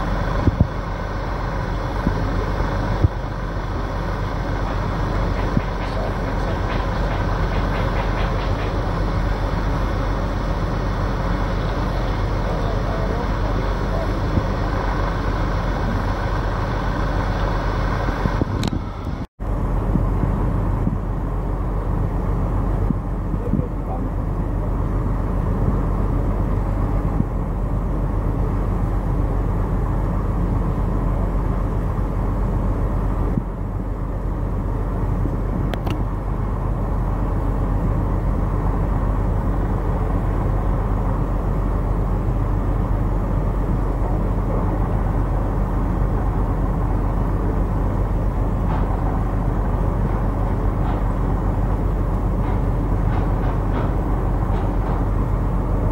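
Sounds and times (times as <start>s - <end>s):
harbour ambience rumble: 0.0s - 55.9s.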